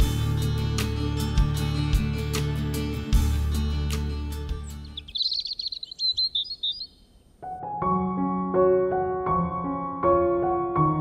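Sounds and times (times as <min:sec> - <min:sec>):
guitar music: 0:00.0 - 0:05.1
high bird chirps: 0:04.6 - 0:07.3
soft piano music: 0:07.4 - 0:11.0.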